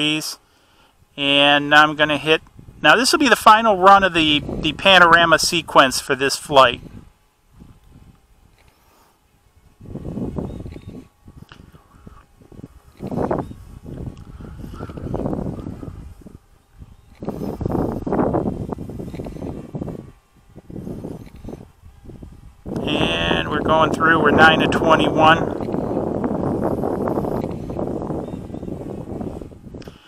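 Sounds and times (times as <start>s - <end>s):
wind buffeting microphone: 0.0s - 0.2s, 0.9s - 30.0s.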